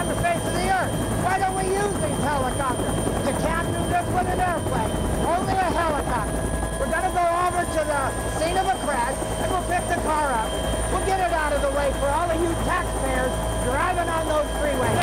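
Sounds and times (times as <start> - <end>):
helicopter rotor rumble: 0.0 - 15.0
helicopter turbine whine: 0.0 - 15.0
man talking loudly: 0.0 - 15.0.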